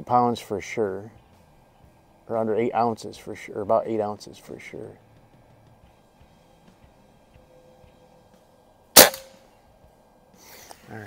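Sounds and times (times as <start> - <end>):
air rifle shot: 9.0 - 9.4.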